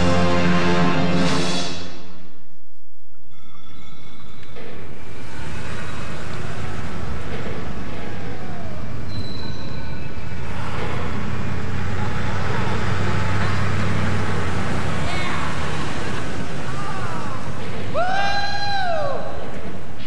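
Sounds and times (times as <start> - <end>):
brief high tone: 3.3 - 4.5
steady rumbling noise: 4.4 - 20.0.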